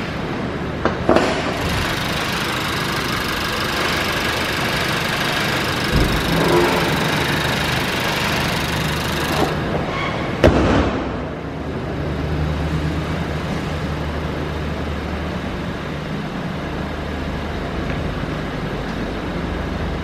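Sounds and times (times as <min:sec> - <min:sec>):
car engine idling: 0:01.5 - 0:09.8.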